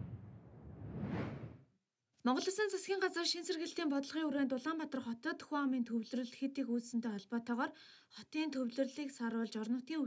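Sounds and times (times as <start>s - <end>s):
whoosh swishes: 0.0s - 1.6s.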